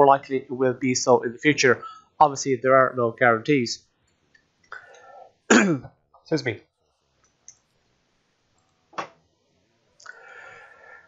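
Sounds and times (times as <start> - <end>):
man speaking: 0.0 - 3.8, 5.5 - 6.6
man coughing: 5.5 - 5.9.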